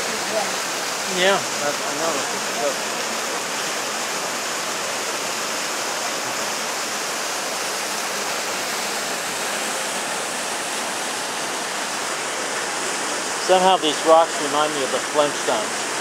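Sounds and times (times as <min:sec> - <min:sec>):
river water rushing over boulders: 0:00.0 - 0:16.0.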